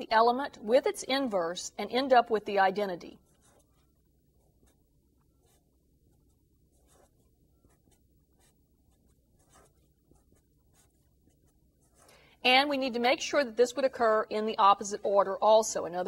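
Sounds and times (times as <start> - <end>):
marker scratching on paper: 3.2 - 12.1.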